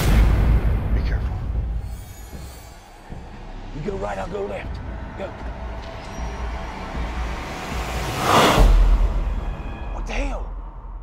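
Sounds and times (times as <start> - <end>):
whoosh: 7.6 - 9.9.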